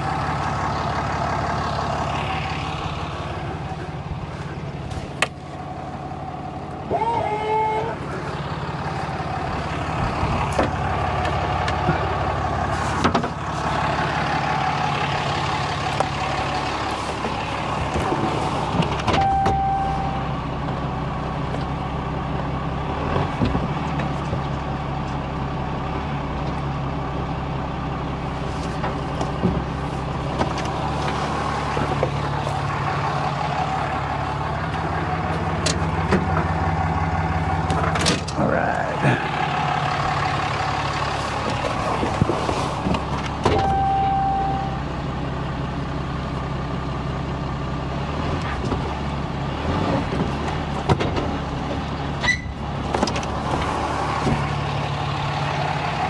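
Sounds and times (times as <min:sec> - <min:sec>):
pickup truck engine idling: 0:00.0 - 0:23.0, 0:23.7 - 0:48.2, 0:50.5 - 0:56.0
short beep: 0:19.2 - 0:20.3, 0:43.6 - 0:44.8.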